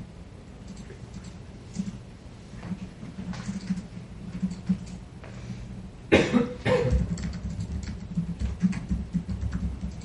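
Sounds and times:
person coughing: 6.1s - 7.1s.

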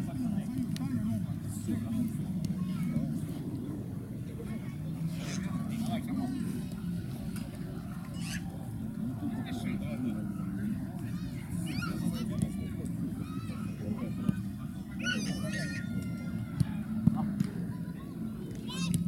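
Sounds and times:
players calling and shouting: 8.0s - 19.0s.

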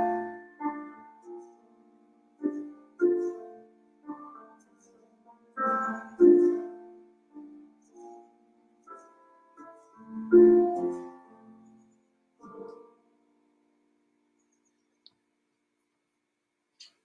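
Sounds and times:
grand piano chords: 0.0s - 14.3s.

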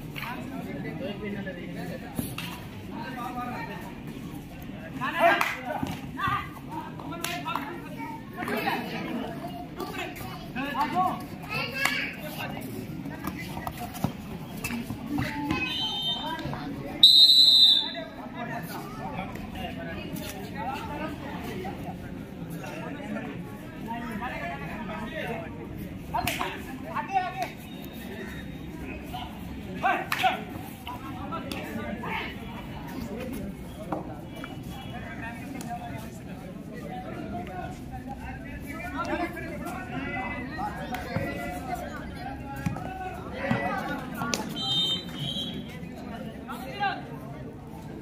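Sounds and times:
low crowd din: 0.0s - 48.0s.

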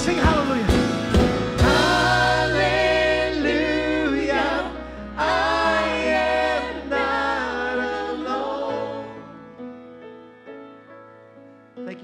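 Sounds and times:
band with drums and bass: 0.0s - 3.1s
group singing worship song: 1.6s - 9.6s.

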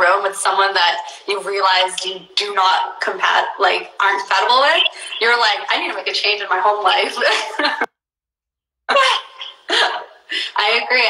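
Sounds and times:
woman laughing: 7.1s - 7.9s, 8.9s - 10.6s.

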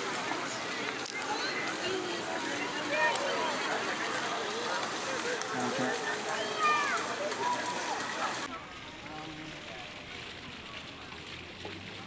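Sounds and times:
distant crowd chatter: 0.0s - 12.0s.

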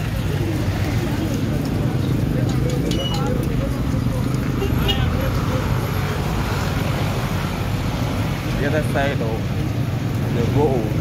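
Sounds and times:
people chattering: 0.0s - 11.0s
road traffic rumble: 0.0s - 11.0s.

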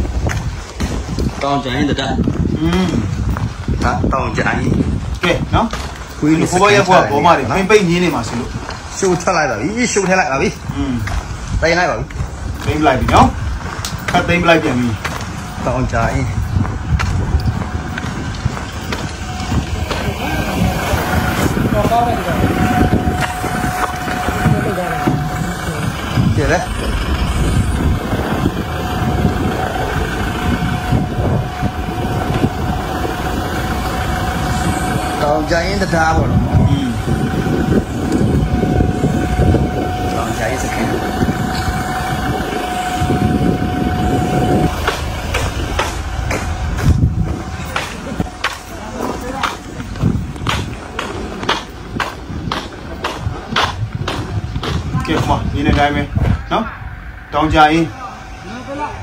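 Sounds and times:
low outdoor rumble: 0.0s - 59.0s
steady whine: 0.0s - 59.0s
voices: 0.0s - 59.0s.

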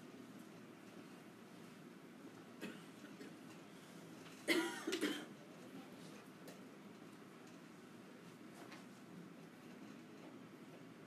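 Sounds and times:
person coughing: 4.5s - 5.3s.

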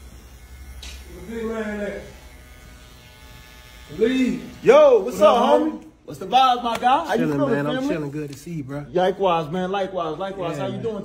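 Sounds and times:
electric hair clippers buzzing: 0.0s - 5.8s.

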